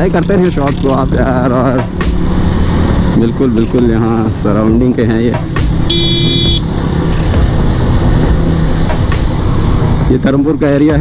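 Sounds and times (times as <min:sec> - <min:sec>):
motorcycle engine running: 0:00.0 - 0:11.0
road and wind noise: 0:00.0 - 0:11.0
high-pitched beep: 0:05.9 - 0:06.7.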